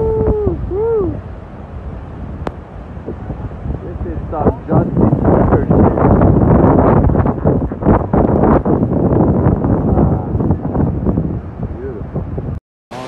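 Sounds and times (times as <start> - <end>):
waterfall roaring: 0.0 - 11.9
wind buffeting microphone: 0.0 - 13.0.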